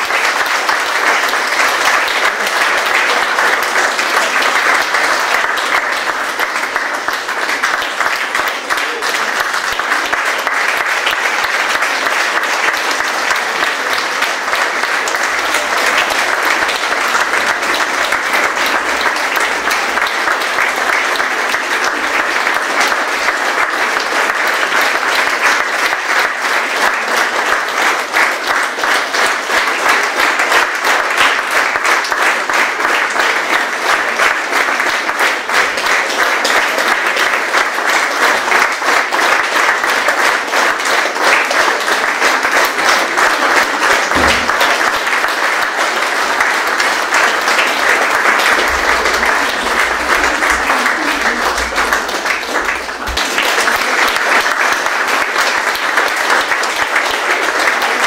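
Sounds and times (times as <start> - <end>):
audience applauding: 0.0 - 58.0.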